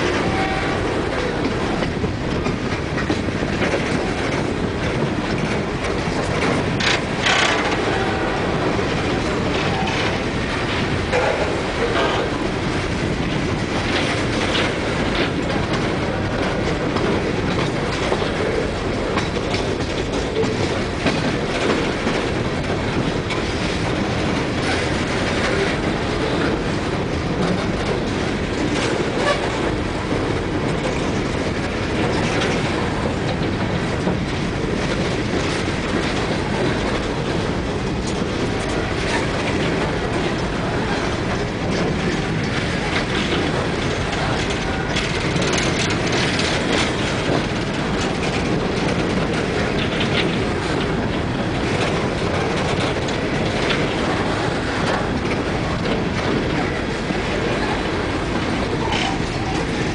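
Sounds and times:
freight train rolling rumble: 0.0 - 59.9
train wheels clicking and clanking: 0.0 - 59.9.

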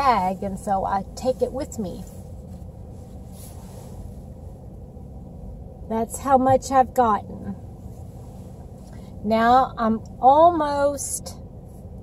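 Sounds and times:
soft rustle: 0.0 - 5.5, 7.7 - 9.2
car engine idling: 0.0 - 12.0.

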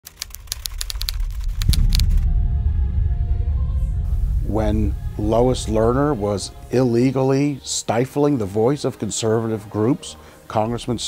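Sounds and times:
typewriter keys clacking: 0.0 - 1.7
low rumble: 0.4 - 7.9.

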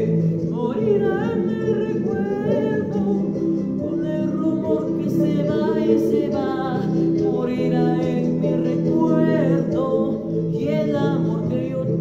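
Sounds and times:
instrumental accompaniment: 0.0 - 12.0
young man singing ballad: 0.0 - 12.0.

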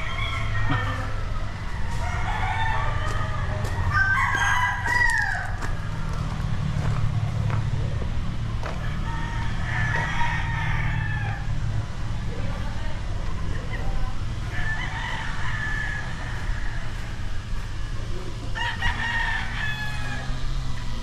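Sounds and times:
roosters crowing: 0.0 - 13.1, 13.7 - 21.0.

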